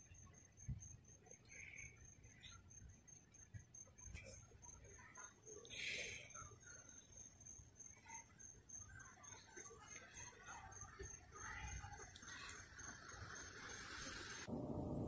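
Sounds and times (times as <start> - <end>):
low rumble: 14.5 - 15.0.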